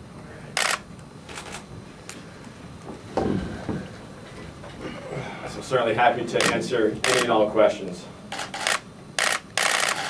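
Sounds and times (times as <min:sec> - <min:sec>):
camera shutters clicking: 0:00.6 - 0:01.6, 0:06.4 - 0:07.3, 0:08.3 - 0:10.0.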